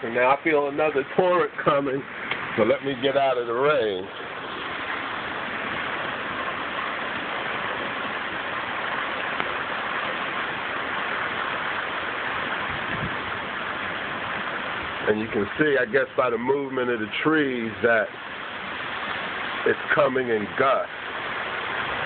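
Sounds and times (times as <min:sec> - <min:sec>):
heavy rain on pavement: 0:00.0 - 0:22.0.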